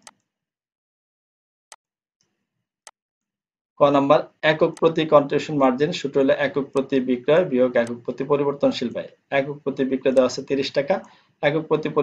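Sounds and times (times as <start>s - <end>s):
computer mouse click: 0.0s - 0.3s
man speaking: 3.8s - 12.0s.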